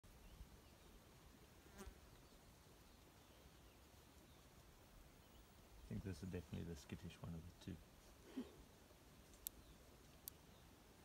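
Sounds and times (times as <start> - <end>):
faint insect buzz: 1.4 - 4.4.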